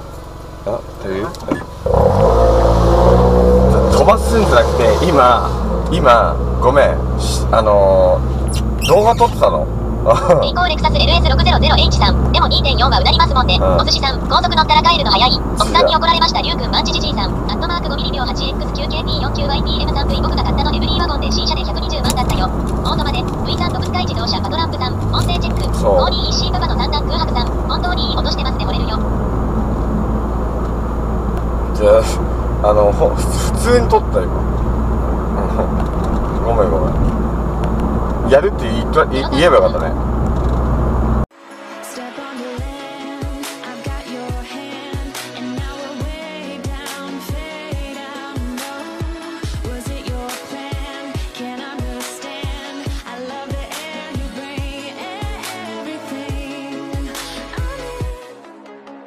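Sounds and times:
van engine droning: 0.0 - 41.3.

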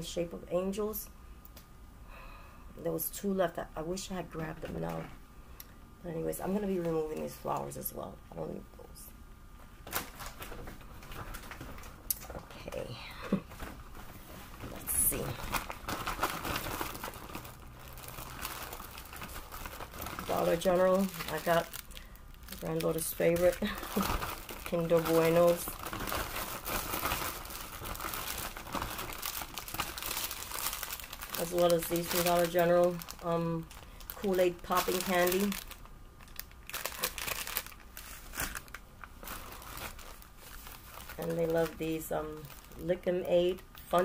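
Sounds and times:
packaging crinkling and rustling: 9.8 - 12.8, 13.4 - 44.0.

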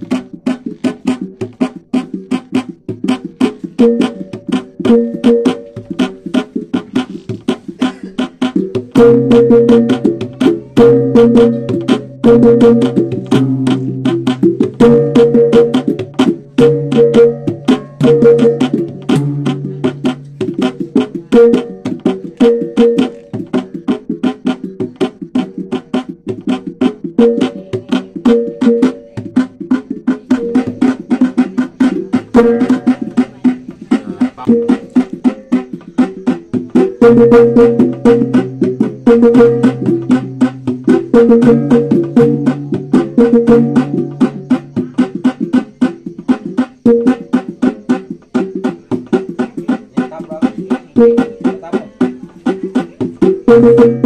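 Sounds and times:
hand drum beating fast: 0.0 - 54.0.

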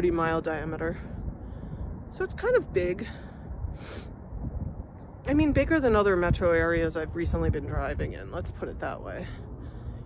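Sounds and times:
wind rumble on microphone: 0.0 - 10.0
breathy intake of breath: 3.1 - 4.2.

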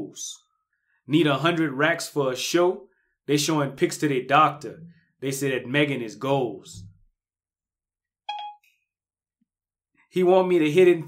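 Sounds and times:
short beep tone: 8.3 - 8.6.

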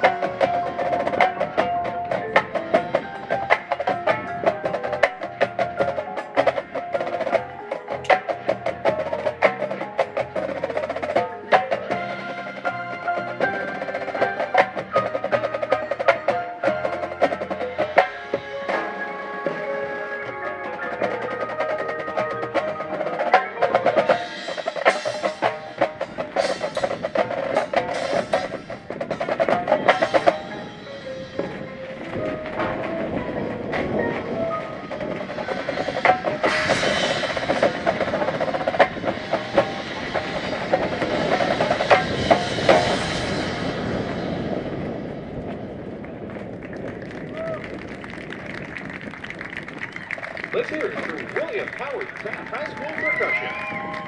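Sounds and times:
rapid drum strokes: 0.0 - 45.9
cymbal crash and roll: 20.9 - 46.6.

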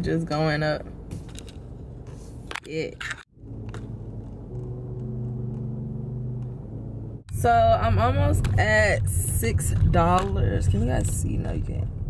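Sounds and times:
car engine and road hum: 0.0 - 12.0.

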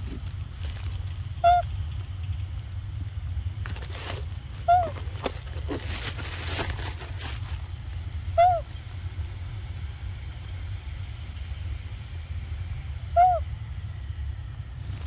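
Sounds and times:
steady low rumble: 0.0 - 15.0
animal hooting: 8.3 - 8.7, 13.1 - 13.5.

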